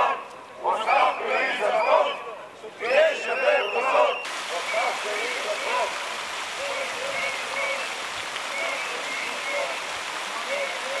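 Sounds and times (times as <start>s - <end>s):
fountain water splashing into pool: 4.2s - 11.0s
distant voices: 4.3s - 11.0s.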